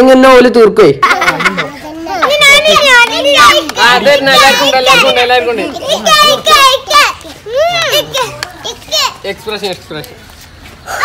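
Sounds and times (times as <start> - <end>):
children talking and exclaiming: 1.0 - 11.0.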